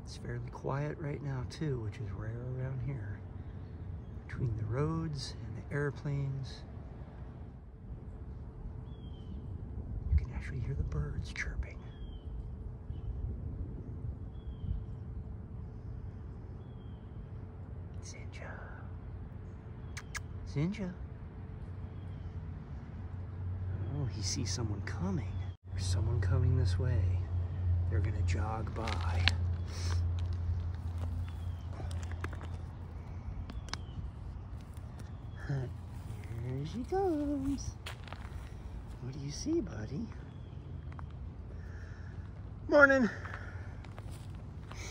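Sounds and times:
low outdoor rumble: 0.0s - 44.9s
steady low hum: 0.0s - 44.9s
faint bird chirps: 14.2s - 21.0s.

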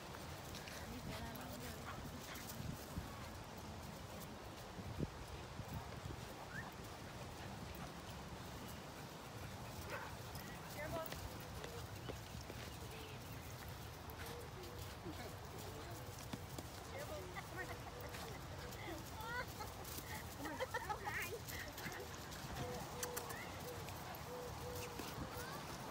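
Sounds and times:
puppies scuffling on grass: 0.0s - 25.9s.

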